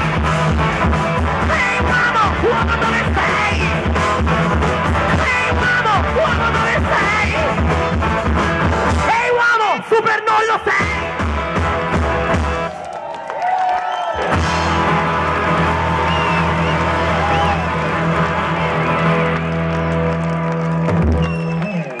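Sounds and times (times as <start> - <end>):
live rock band playing: 0.0 - 12.7, 14.2 - 22.0.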